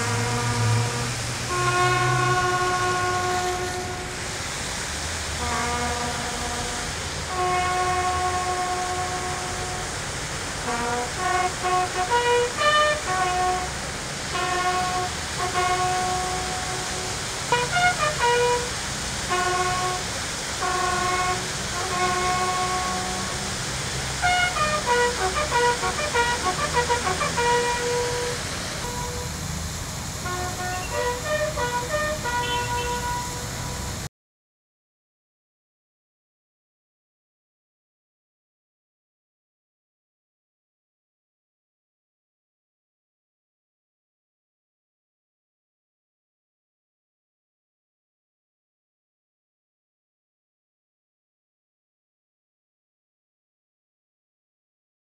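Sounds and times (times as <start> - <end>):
solo bugle call: 0.0 - 4.2, 5.4 - 10.0, 10.6 - 23.5, 24.2 - 29.4, 30.2 - 33.9.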